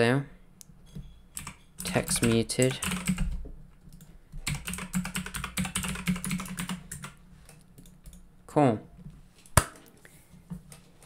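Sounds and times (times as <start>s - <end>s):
fast typing on keyboard: 1.4s - 7.2s.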